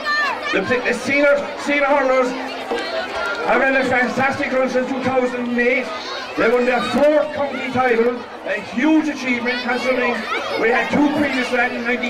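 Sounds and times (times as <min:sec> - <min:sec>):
crowd chatter: 0:00.0 - 0:12.0
man speaking over public address: 0:00.4 - 0:12.0.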